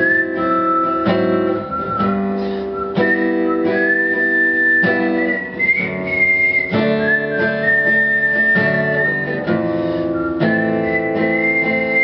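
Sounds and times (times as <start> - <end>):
acoustic guitar strumming: 0.0 - 12.0
high whistled melody: 0.0 - 12.0.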